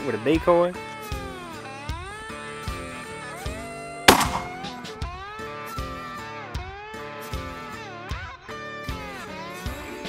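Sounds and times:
loud shotgun shot: 4.1 - 5.0.

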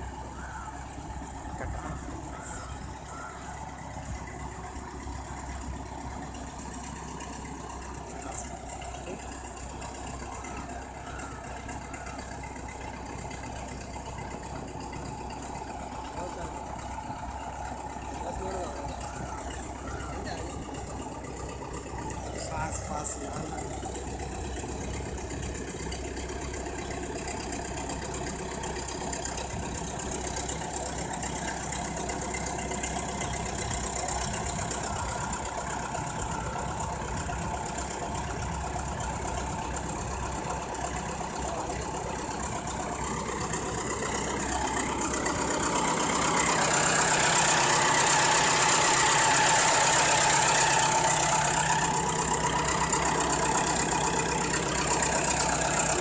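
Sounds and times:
bulldozer engine running: 0.0 - 56.0.

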